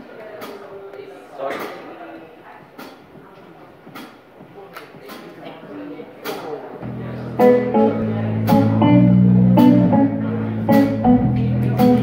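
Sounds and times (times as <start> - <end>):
room murmur: 0.0 - 12.0
stray instrument tones: 6.9 - 12.0.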